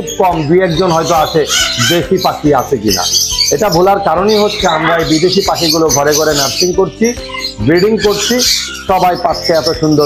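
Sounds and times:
man talking: 0.0 - 10.0
parakeets squawking: 0.0 - 10.0.

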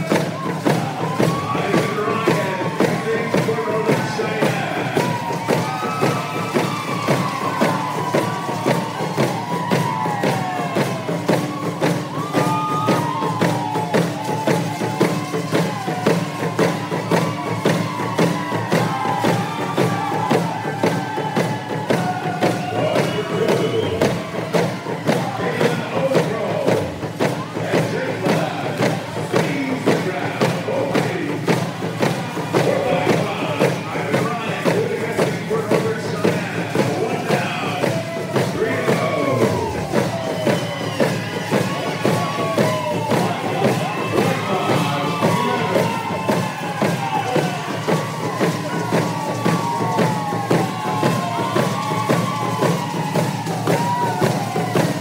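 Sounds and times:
group singing and whooping: 0.0 - 55.0
hand drums beating: 0.0 - 55.0.

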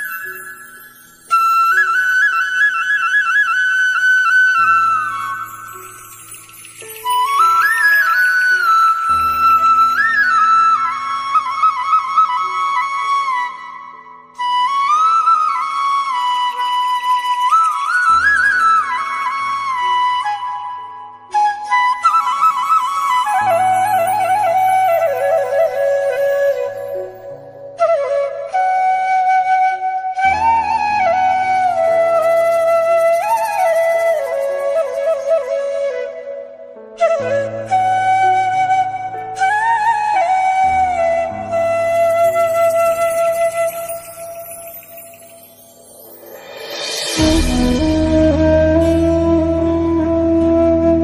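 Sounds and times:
flute playing slow melody: 0.0 - 51.0
low accompaniment: 45.8 - 51.0.

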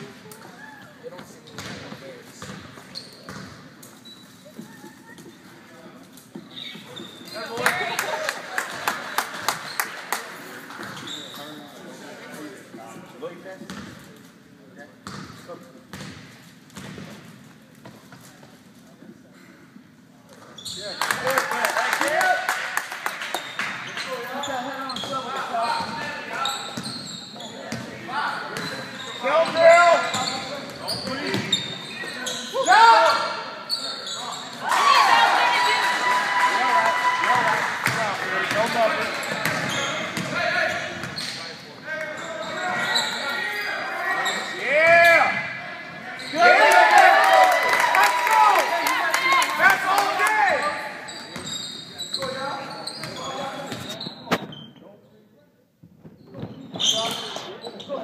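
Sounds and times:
ball bouncing on court: 1.5 - 3.6, 13.6 - 14.0, 15.0 - 17.2, 39.4 - 40.4
crowd voices and shouts: 34.4 - 41.0.

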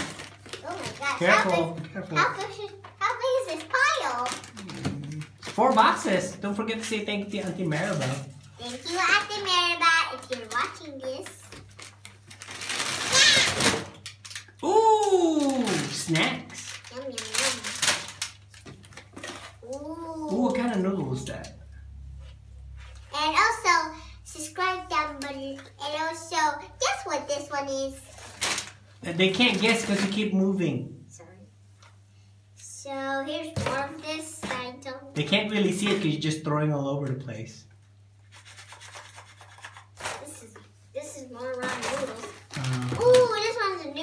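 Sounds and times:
snack packages rustling: 0.0 - 19.7, 28.1 - 30.2, 41.4 - 44.0.

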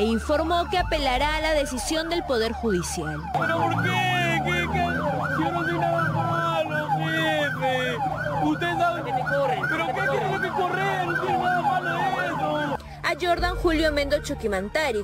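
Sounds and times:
emergency sirens yelping: 0.0 - 13.4.

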